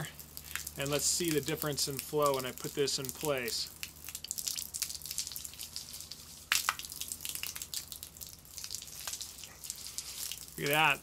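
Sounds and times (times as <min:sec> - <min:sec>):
hose water spattering on paving: 0:00.0 - 0:11.0.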